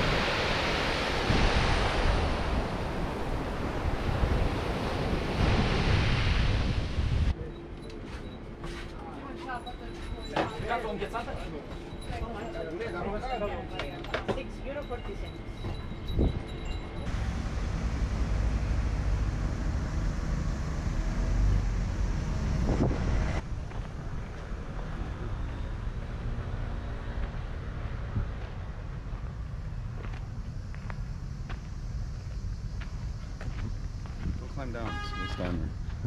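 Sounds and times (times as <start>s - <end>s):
wind rumbling on microphone: 0.0s - 7.4s, 15.5s - 26.2s, 27.1s - 36.0s.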